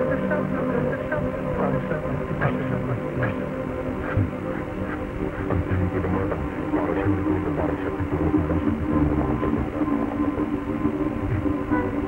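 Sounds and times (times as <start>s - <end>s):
droning chord of held tones: 0.0s - 12.0s.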